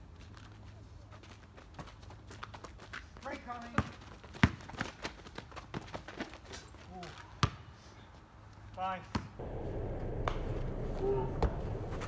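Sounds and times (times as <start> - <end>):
basketball bouncing on asphalt: 1.3 - 7.7, 8.7 - 9.4.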